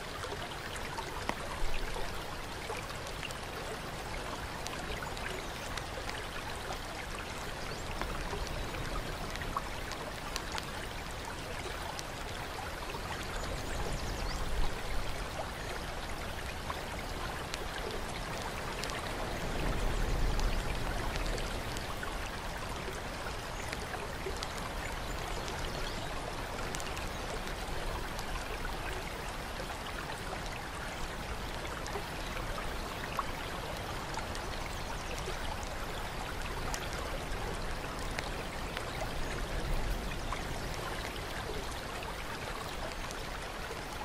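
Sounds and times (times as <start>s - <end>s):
water drips and splashes: 0.0s - 44.0s
water flowing and trickling: 0.0s - 44.0s.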